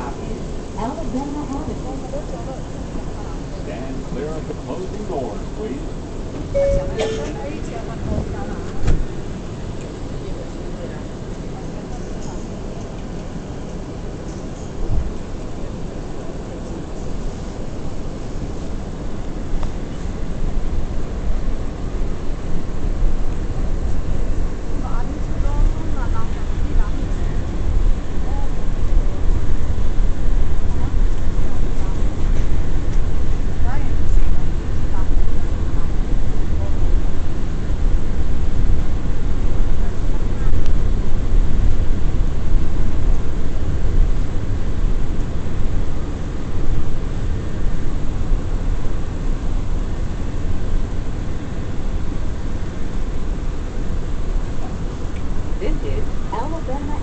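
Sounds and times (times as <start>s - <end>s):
subway wheels rumbling on rails: 0.0s - 57.0s.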